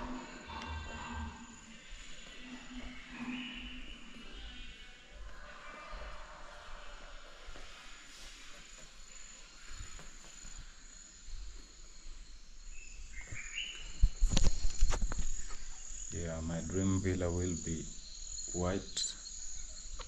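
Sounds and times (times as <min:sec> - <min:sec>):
insects chirring: 0:00.0 - 0:20.0.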